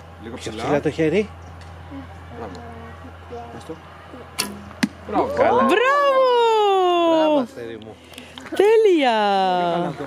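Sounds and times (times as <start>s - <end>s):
bow string snap: 4.4s - 5.0s.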